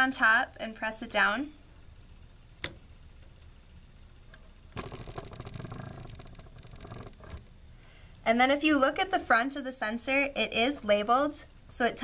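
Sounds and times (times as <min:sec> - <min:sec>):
faint crackling and scraping: 0:04.2 - 0:08.0
sensor pins clicking into breadboard: 0:04.8 - 0:07.5.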